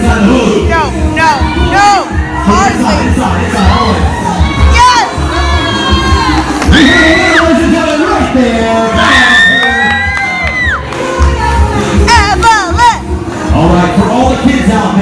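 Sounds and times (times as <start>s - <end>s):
loud dance music: 0.0s - 15.0s.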